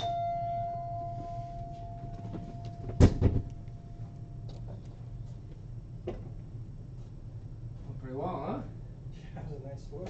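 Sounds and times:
bell-like chime: 0.0 - 3.0
loud thump: 2.8 - 3.5.

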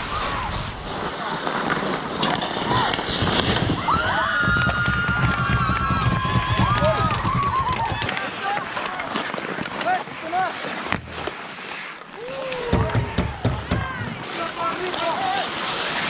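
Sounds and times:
low rumble: 3.2 - 8.1
players whooping and yelling: 3.7 - 8.6, 12.1 - 14.2.

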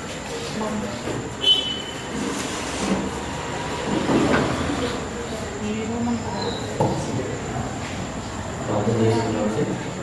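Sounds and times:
high feedback squeal: 1.4 - 2.2.

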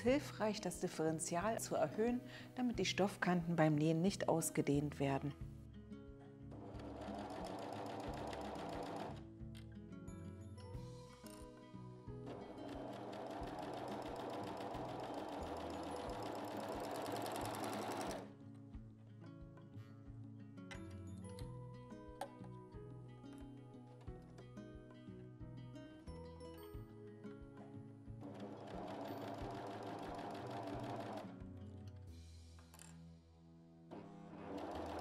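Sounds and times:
background music: 0.0 - 35.0
overlock sewing machine stitching: 6.5 - 9.2, 12.2 - 18.3, 28.2 - 31.4, 33.9 - 35.0.

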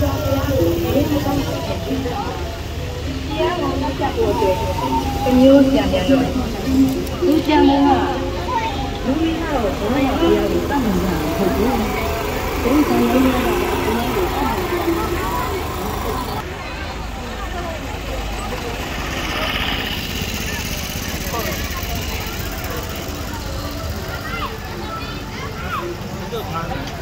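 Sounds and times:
people talking: 0.0 - 27.0
vehicle engine running: 0.0 - 27.0.

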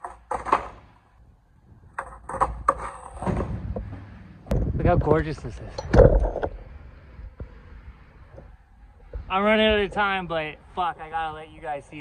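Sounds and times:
skateboard knocking and clattering on concrete: 0.0 - 0.9, 1.9 - 3.9.

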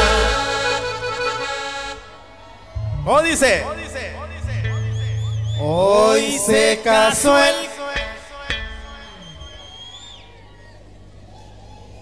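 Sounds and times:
live band holding final chord: 0.0 - 2.1.

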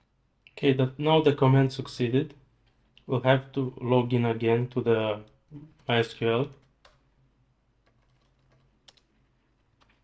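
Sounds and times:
quiet steady hum: 0.0 - 10.0
faint keyboard keystrokes: 7.8 - 10.0.

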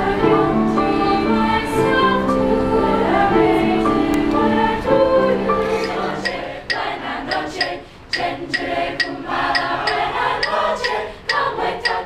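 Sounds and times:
choir singing chords: 0.0 - 12.0.

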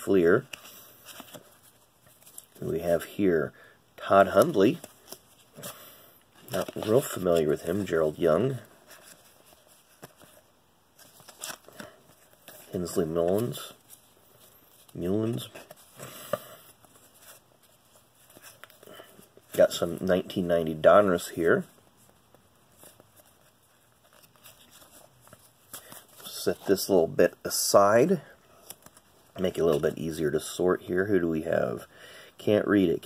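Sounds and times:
cards being shuffled: 0.4 - 2.7, 4.0 - 26.9, 28.6 - 30.1.

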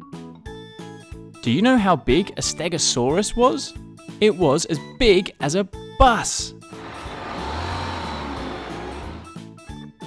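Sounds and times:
cartoon bus engine rumble: 6.6 - 9.4.

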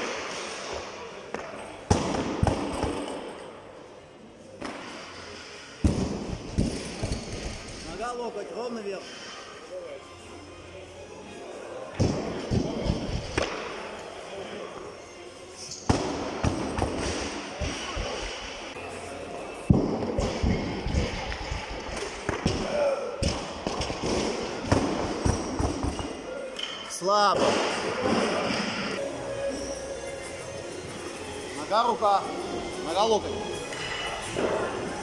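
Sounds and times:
voices in a hall: 7.3 - 25.2.

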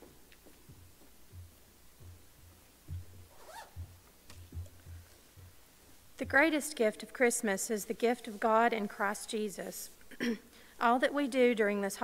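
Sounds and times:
footsteps on stage platform: 0.0 - 6.6.

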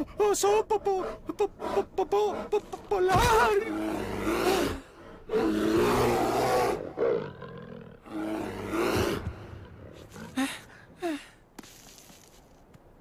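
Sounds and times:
lion roaring: 3.7 - 10.3.

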